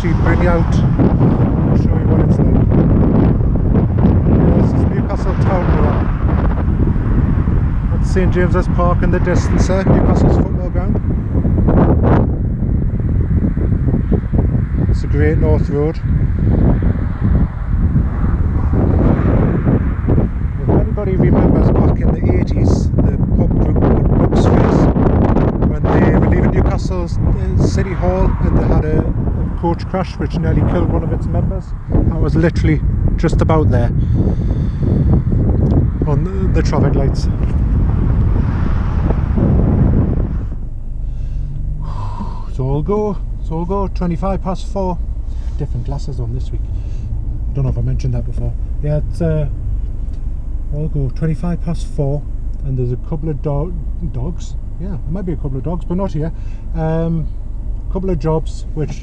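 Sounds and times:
van engine humming: 0.0 - 59.0
wind buffeting microphone: 0.0 - 59.0.

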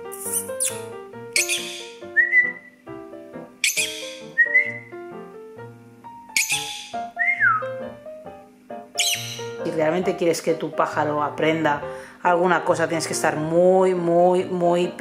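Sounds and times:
lovebird high-pitched calls: 0.0 - 2.8, 3.6 - 4.9, 6.4 - 7.2, 9.0 - 9.6
background music: 0.0 - 15.0
short whistled note: 3.7 - 4.9.

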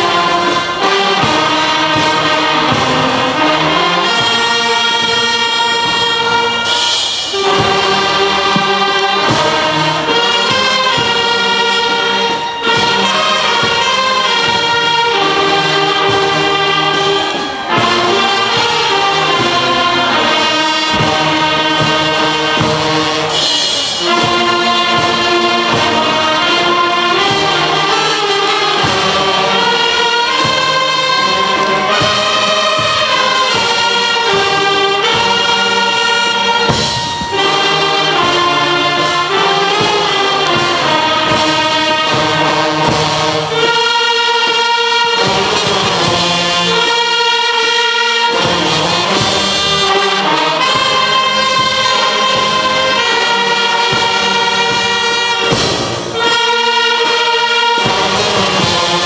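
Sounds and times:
brass band playing slow melody: 0.0 - 59.0.

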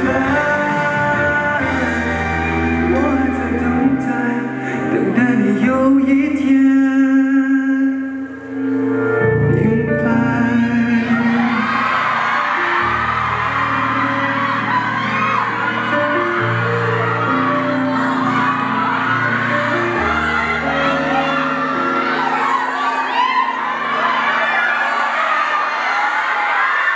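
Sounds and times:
bass line: 0.0 - 4.4
slow instrumental ballad: 0.0 - 25.2
audience cheering and whooping: 10.6 - 26.9.

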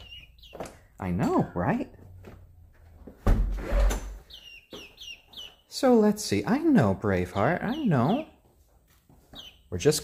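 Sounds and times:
door opening with knock and rustle: 3.2 - 4.2.

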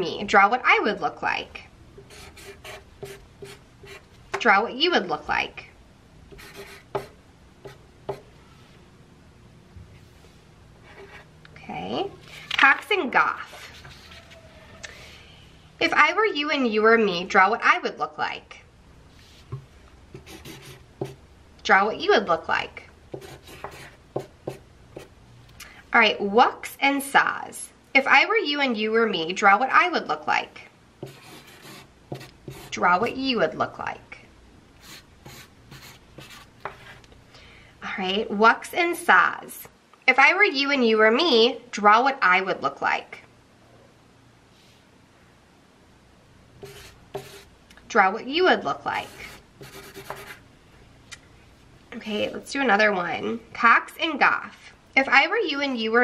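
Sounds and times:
marker drawing on paper: 2.0 - 4.0, 6.3 - 8.2, 13.3 - 14.4, 20.2 - 21.2, 23.2 - 25.1, 31.0 - 33.2, 34.8 - 37.0, 46.6 - 47.5, 49.0 - 50.4.

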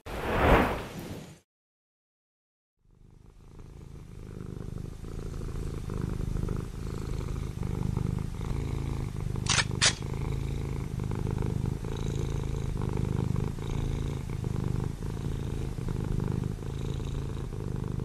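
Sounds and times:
cat purring: 2.8 - 18.0.

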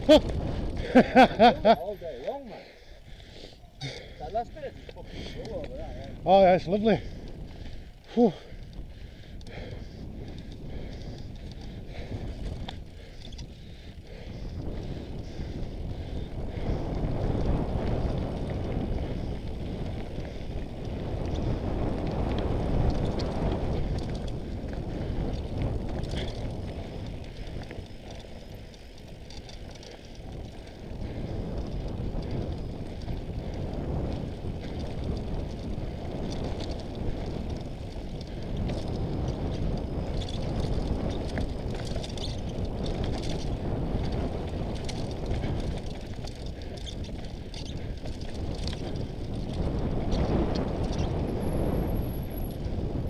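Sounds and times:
wind rumble on microphone: 0.0 - 2.2, 3.8 - 53.0.

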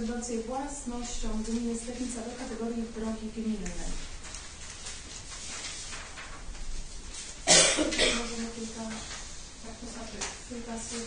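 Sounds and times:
person coughing: 7.5 - 8.5.

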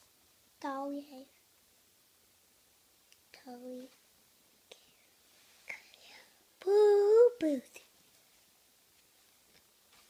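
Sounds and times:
child whispering: 4.7 - 7.9.

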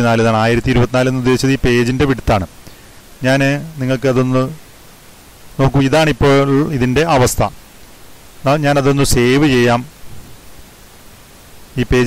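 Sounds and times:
person speaking: 0.0 - 2.6, 3.2 - 4.7, 5.6 - 7.6, 8.4 - 10.0, 11.8 - 12.0
faint background hiss: 0.0 - 12.0.

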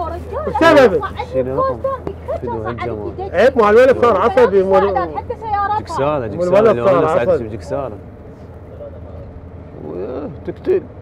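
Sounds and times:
minibus engine and road rumble: 0.0 - 11.0.

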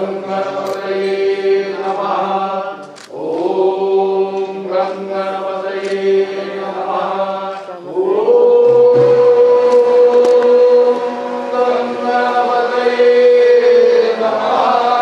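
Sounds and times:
voices chanting in unison: 0.0 - 15.0.

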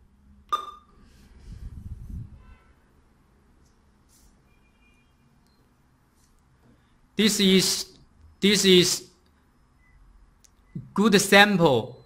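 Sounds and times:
brief beep: 4.5 - 5.8, 9.6 - 10.8.

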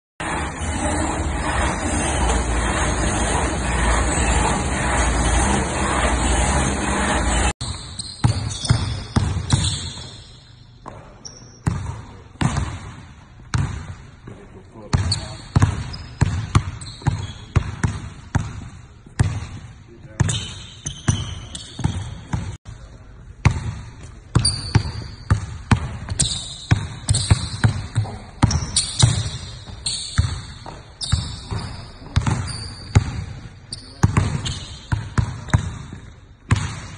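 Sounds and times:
high-pitched shoe squeaks: 7.6 - 11.6, 16.8 - 17.5, 20.3 - 22.3, 24.4 - 25.3, 26.1 - 27.6, 28.6 - 30.2, 31.0 - 33.0
basketball bouncing on hardwood: 11.6 - 12.9, 13.5 - 14.0, 14.9 - 19.6, 34.0 - 36.9.

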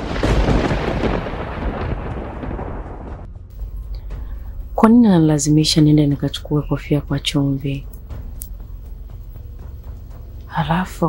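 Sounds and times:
thunder-like rumbling boom: 0.0 - 5.7.

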